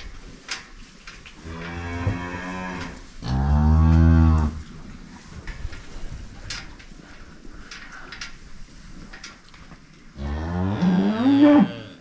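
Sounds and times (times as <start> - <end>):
cow mooing: 10.2 - 12.0.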